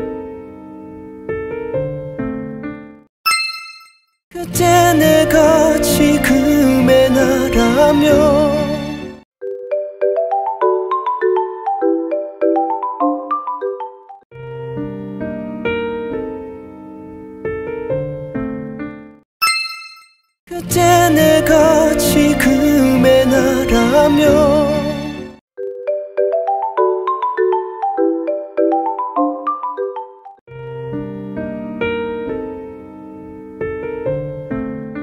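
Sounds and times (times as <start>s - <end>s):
soft piano music: 0.0s - 3.0s, 14.4s - 19.2s, 30.5s - 35.0s
bright chime ding: 3.3s - 4.2s, 19.4s - 20.3s.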